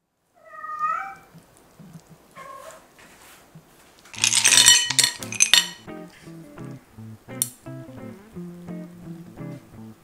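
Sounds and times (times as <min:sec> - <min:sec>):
cat meowing: 0:00.4 - 0:01.3.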